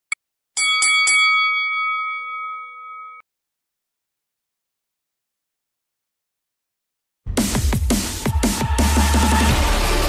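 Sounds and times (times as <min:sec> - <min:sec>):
bell struck and ringing: 0:00.6 - 0:03.2.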